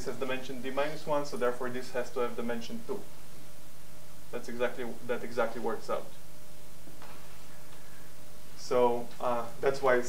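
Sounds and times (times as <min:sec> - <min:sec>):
faint hiss: 0:00.0 - 0:10.0
low constant hum: 0:00.0 - 0:10.0.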